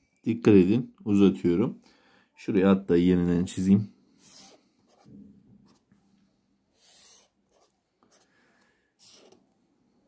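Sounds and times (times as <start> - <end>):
marker scratching on paper: 4.2 - 5.9, 6.8 - 8.3, 9.0 - 9.4.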